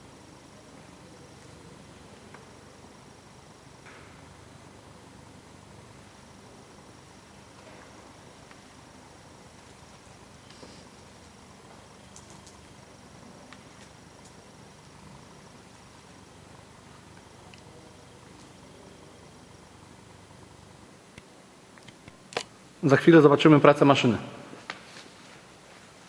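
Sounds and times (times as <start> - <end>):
low steady hum and hiss: 0.0 - 26.0.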